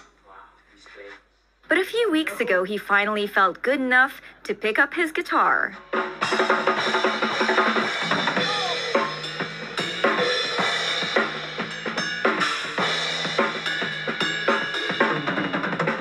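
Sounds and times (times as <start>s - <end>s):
drum kit beat: 5.8s - 16.0s
bass guitar notes: 6.2s - 16.0s.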